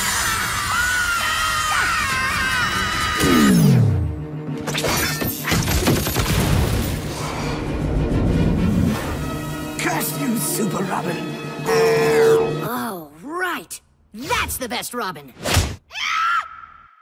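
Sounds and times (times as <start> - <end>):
wavering cartoon screams: 0.0 - 3.5, 15.9 - 17.0
crashing and shattering effects: 4.7 - 7.1
cartoon music: 11.6 - 13.0.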